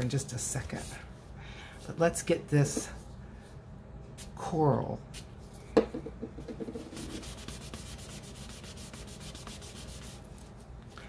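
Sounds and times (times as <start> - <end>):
cloth rubbing on paper: 6.7 - 10.7.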